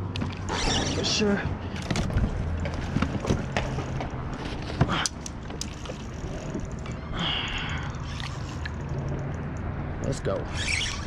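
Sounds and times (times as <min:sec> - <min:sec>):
fishing reel cranking: 0:05.0 - 0:09.5, 0:10.4 - 0:11.0.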